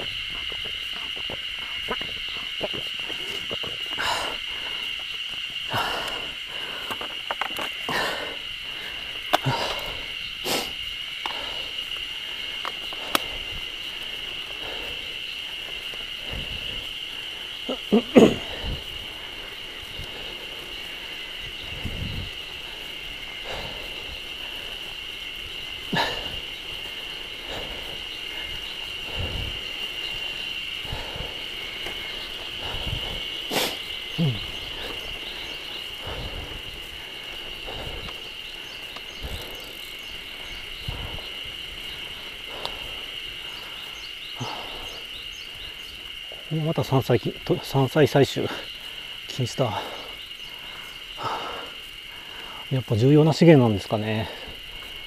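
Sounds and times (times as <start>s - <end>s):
high-pitched insect chorus: 0.0s - 55.0s
bicycle knocks and rattles: 6.8s - 7.8s.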